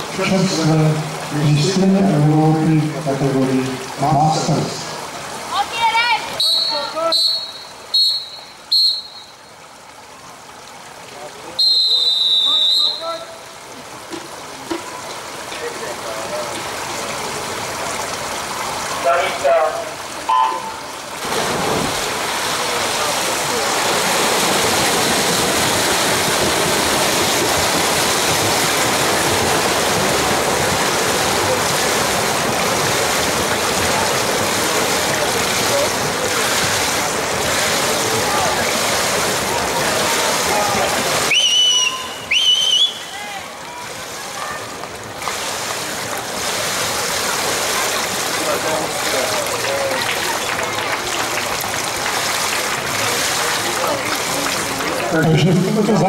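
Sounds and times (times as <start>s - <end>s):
swimmers splashing: 0.0s - 10.1s, 11.4s - 56.0s
referee's whistle blasts: 6.4s - 9.3s, 11.6s - 13.2s, 41.3s - 43.2s.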